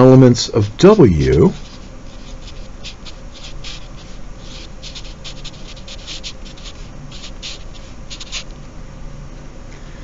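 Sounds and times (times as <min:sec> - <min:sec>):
marker writing on paper: 0:00.6 - 0:08.5.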